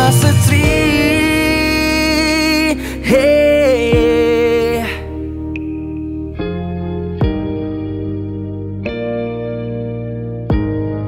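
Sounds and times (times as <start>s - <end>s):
man singing long note: 0.0s - 5.1s
pop ballad band: 0.0s - 11.0s.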